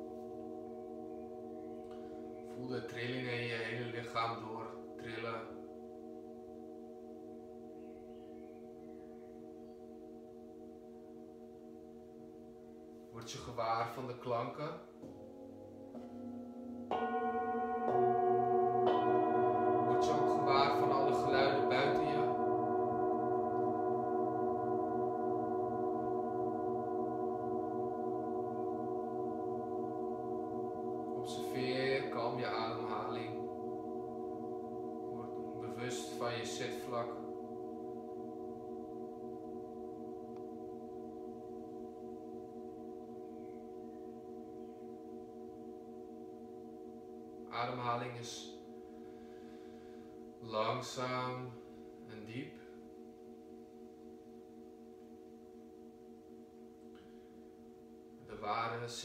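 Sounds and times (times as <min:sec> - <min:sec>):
brass singing bowls ringing: 0:00.0 - 0:59.0.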